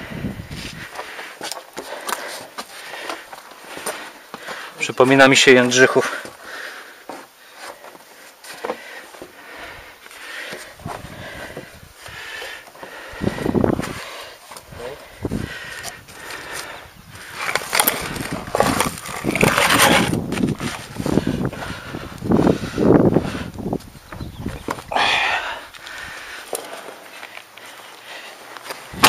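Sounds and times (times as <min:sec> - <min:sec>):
scraping and knocking on wooden plank: 0:17.4 - 0:20.8.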